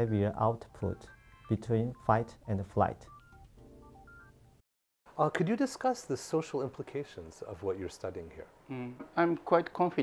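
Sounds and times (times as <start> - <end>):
faint electronic music: 0.0 - 4.6.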